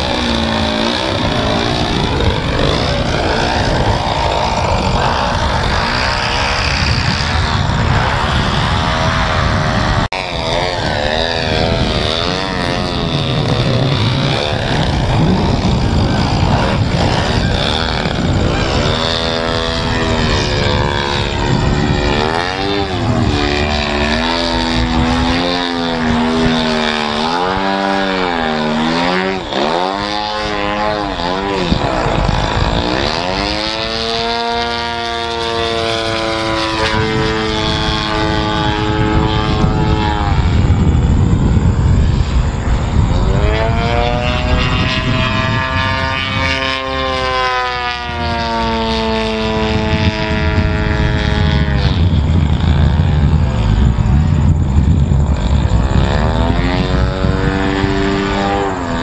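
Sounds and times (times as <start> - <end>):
model airplane engine and propeller: 0.0 - 59.0.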